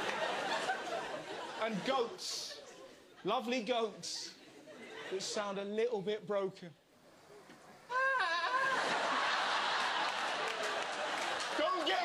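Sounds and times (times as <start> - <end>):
studio audience laughter: 0.0 - 5.6, 8.0 - 12.0.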